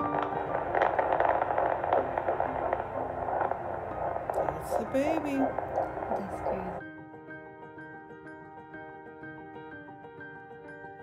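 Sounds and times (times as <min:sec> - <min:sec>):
doppler speaker crackling static: 0:00.0 - 0:06.8.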